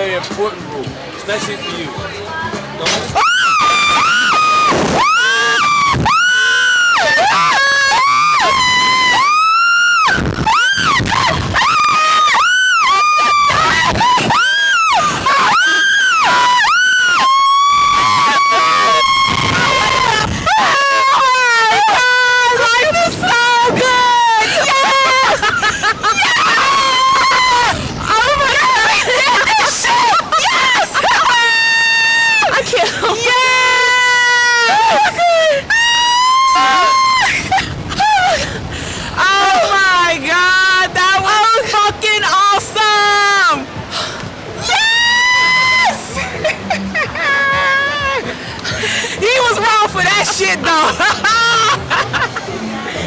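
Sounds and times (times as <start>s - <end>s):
women screaming: 3.1s - 43.7s, 44.5s - 52.4s.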